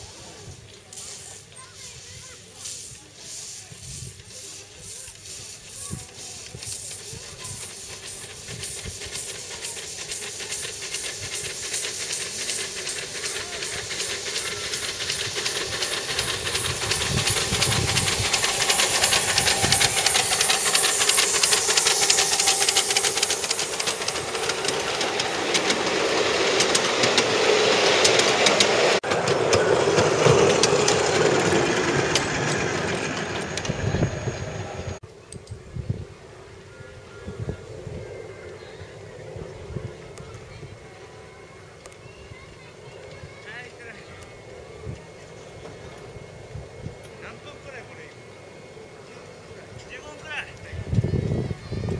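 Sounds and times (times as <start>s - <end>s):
hissing steam: 0.0s - 35.0s
steam locomotive exhaust chuffing: 0.0s - 35.0s.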